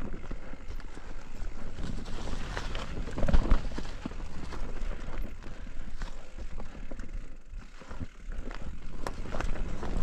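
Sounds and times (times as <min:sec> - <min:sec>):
bike clicks and rattles: 0:00.0 - 0:10.0
bike tyres rolling on dirt: 0:00.0 - 0:10.0.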